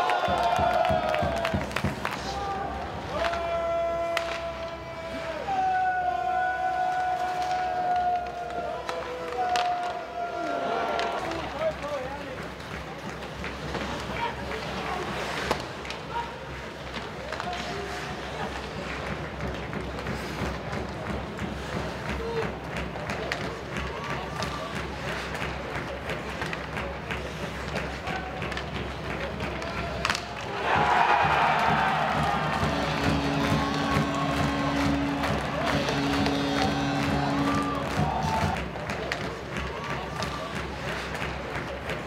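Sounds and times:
arena crowd cheering: 0.0s - 12.4s, 28.0s - 42.0s
clacks of sticks and puck: 0.1s - 4.8s, 6.8s - 10.1s, 10.9s - 42.0s
skates scraping ice: 6.8s - 42.0s
crowd murmur: 10.4s - 42.0s
arena music steady note: 32.2s - 38.0s.

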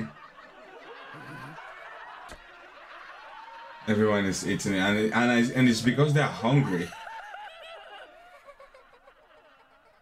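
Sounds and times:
quiet snickering laughter: 0.0s - 2.7s.

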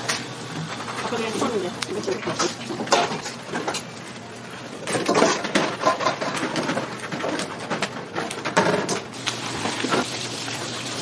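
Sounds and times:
small crackles and clicks: 0.1s - 4.2s.

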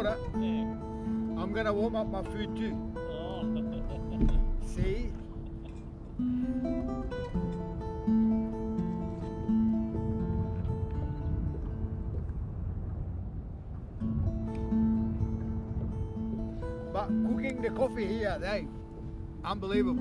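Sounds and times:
guitar music: 0.0s - 20.0s.

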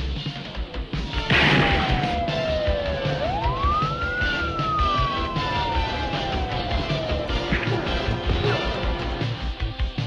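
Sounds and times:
siren wail: 1.3s - 9.0s.

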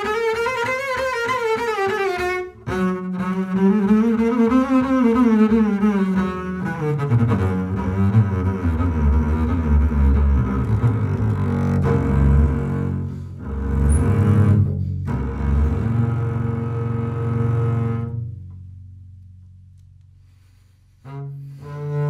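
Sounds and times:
bowed double bass: 0.0s - 22.0s.

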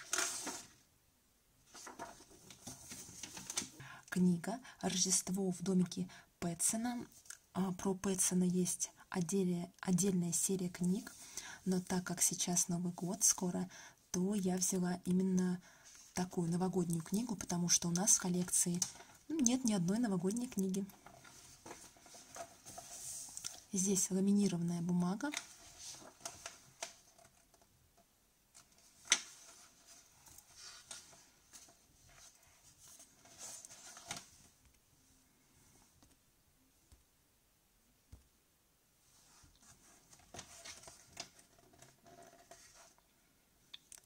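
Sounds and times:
book page turning: 0.0s - 0.8s, 1.7s - 3.8s, 25.3s - 27.7s, 28.6s - 34.6s, 39.3s - 43.0s
page turning swish: 0.0s - 0.8s.

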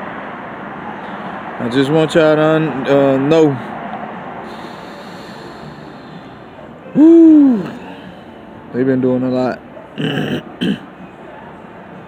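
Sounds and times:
man's hooting hum: 6.8s - 8.1s.

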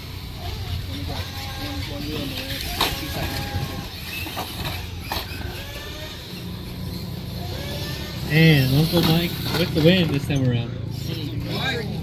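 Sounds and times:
toy truck motor whine: 0.0s - 9.7s.

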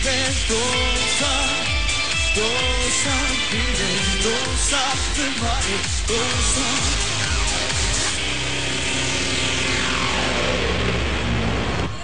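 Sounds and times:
electronic dance music: 0.0s - 12.0s
falling synth sweep: 6.8s - 12.0s.

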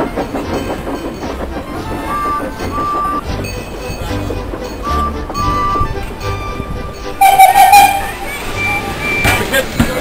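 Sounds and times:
train rumble: 0.0s - 10.0s
train wheels clicking over rail joints: 0.0s - 10.0s.

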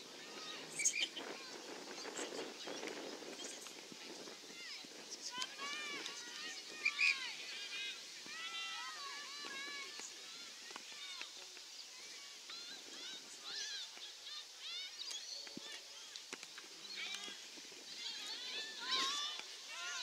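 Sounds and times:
distant shouting and calling: 4.1s - 20.0s.

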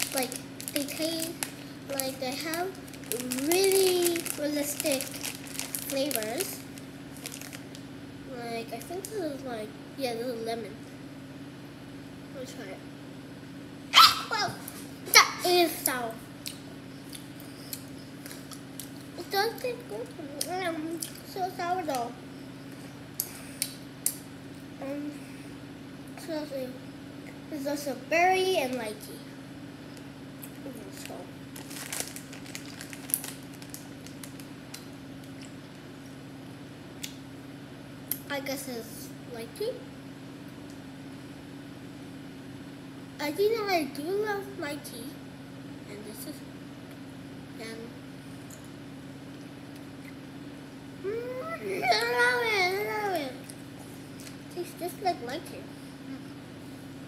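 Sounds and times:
steady low hum: 0.0s - 57.0s
girl's long wavering vocal sound: 51.0s - 53.2s.

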